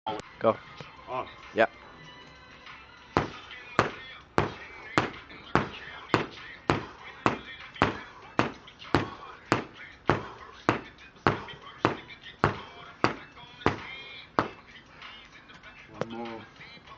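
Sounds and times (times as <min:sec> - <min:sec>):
medicine ball slamming on concrete: 0:03.2 - 0:14.6.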